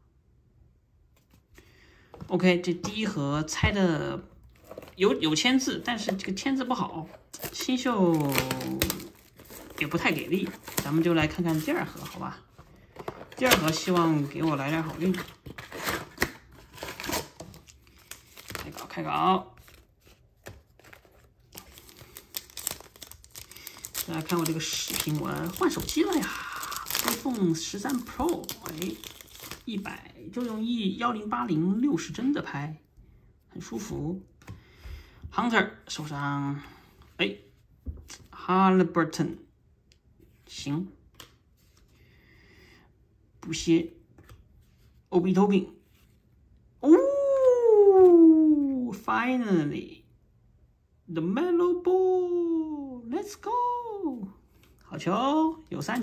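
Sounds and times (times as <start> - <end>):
foil wrapper crinkling and tearing: 7.3 - 12.2, 13.3 - 30.7.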